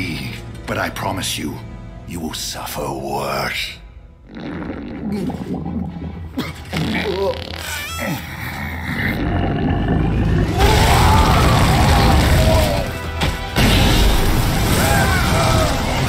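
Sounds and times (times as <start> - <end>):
music: 0.0 - 16.0
fart: 4.2 - 8.3
burst of flame: 10.2 - 16.0.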